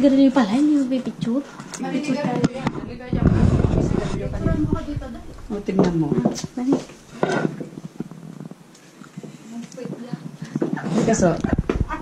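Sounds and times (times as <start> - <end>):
low rumble: 2.8 - 5.8.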